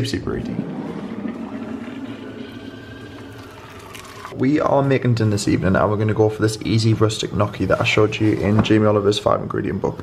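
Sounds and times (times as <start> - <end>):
water pouring into saucepan: 0.6 - 4.4.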